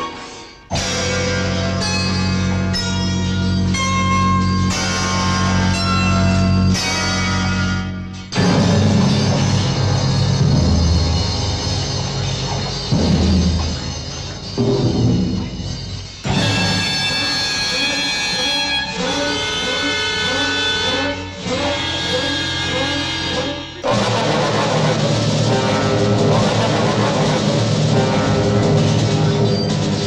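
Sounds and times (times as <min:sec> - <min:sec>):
film score music: 0:00.0 - 0:30.0
low drum strikes: 0:08.4 - 0:15.8.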